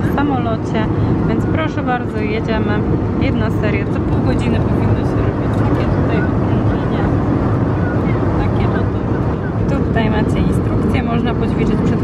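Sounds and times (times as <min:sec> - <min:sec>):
airliner cabin drone: 0:00.0 - 0:12.0.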